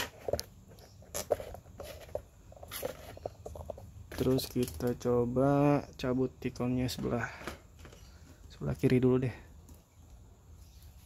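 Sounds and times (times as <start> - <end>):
handling taps and rustles: 0.0 - 5.2.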